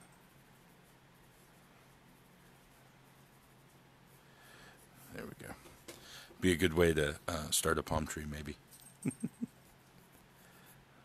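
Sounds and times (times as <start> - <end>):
pencil scratching on paper: 0.0 - 5.3, 9.5 - 10.9.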